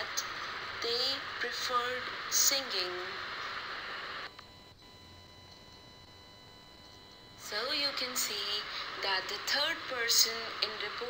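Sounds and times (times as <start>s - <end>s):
recording hiss: 0.0s - 4.3s, 7.4s - 11.0s.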